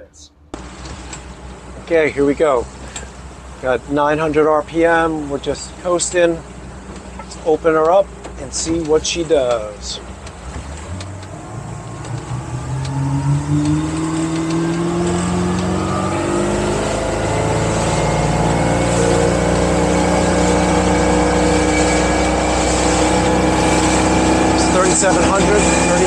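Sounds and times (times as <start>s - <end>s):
boat engine revving up: 0.0s - 26.0s
wind and water rushing: 0.6s - 26.0s.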